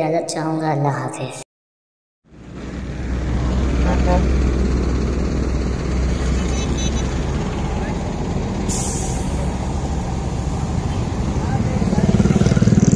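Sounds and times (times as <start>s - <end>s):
coach engine idling: 2.3s - 12.8s
air brakes hissing: 8.5s - 10.0s.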